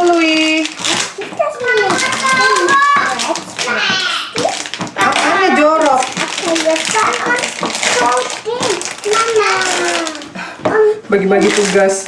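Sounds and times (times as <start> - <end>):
plastic bag crinkling: 0.0 - 12.0
children talking: 0.4 - 11.4.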